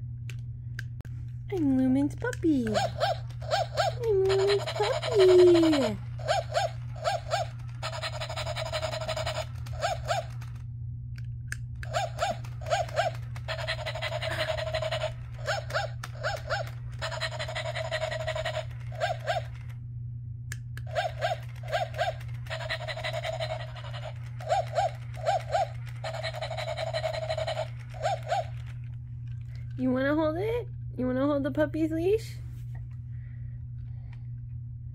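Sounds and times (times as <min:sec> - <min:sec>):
steady low hum: 0:00.0 - 0:34.9
toy dog panting: 0:02.6 - 0:10.6, 0:11.8 - 0:19.7, 0:20.9 - 0:28.9
toy dog yips: 0:02.6 - 0:10.6, 0:11.8 - 0:19.7, 0:20.9 - 0:28.8.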